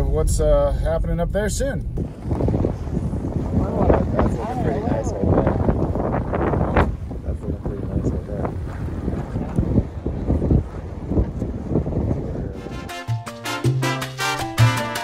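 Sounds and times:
wind buffeting microphone: 0.0 - 12.9.

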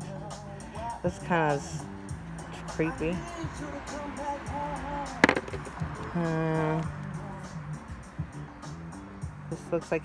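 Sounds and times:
background music: 0.0 - 10.0
stone set down on wooden table: 5.2 - 5.7.

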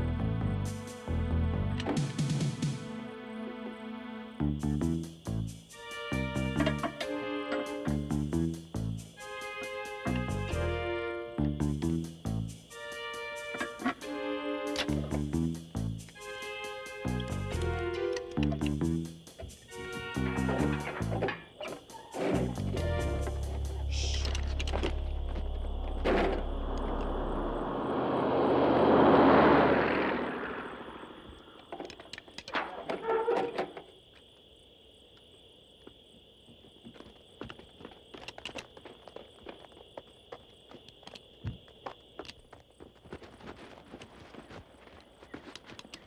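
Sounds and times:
film music: 0.0 - 21.5, 22.2 - 28.1
steady high tone: 22.7 - 28.3
loud rushing swell: 23.2 - 31.3
footsteps through brush: 40.7 - 46.0.

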